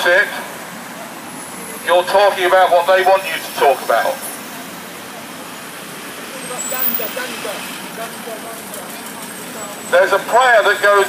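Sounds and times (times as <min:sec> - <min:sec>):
faint voices: 0:00.0 - 0:11.0
vans driving past: 0:00.0 - 0:11.0.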